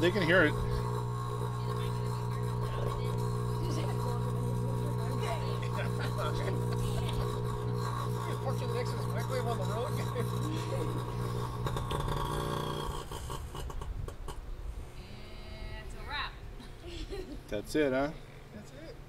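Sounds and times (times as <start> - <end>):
microwave oven humming: 0.0 - 13.8.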